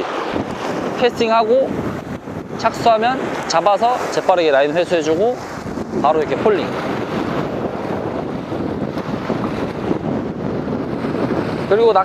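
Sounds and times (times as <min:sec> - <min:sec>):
sea surf on rocks: 0:00.0 - 0:12.0
wind buffeting microphone: 0:00.0 - 0:12.0.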